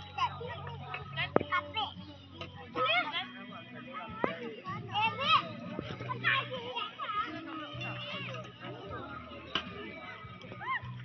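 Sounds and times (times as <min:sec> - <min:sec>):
adults talking: 0:00.0 - 0:11.0
young children chattering: 0:00.0 - 0:11.0.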